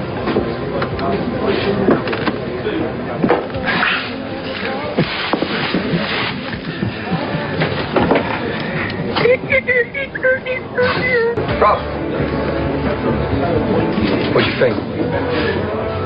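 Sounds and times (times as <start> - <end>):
murmur of many voices: 0.0 - 16.0
music: 0.0 - 16.0.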